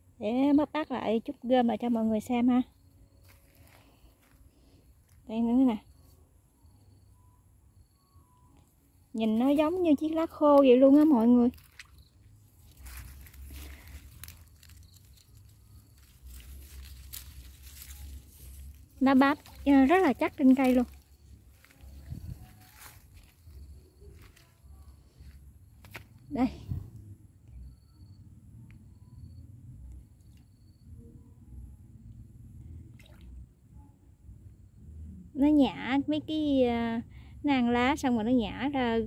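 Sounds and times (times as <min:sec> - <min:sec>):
faint low rumble: 0:00.0 - 0:38.6
rustling in dry leaves: 0:11.5 - 0:25.0.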